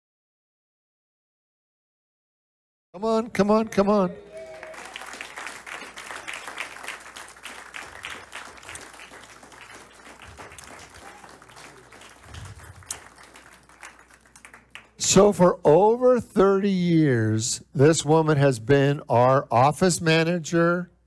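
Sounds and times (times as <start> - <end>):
crowd applauding: 3.4 - 15.0.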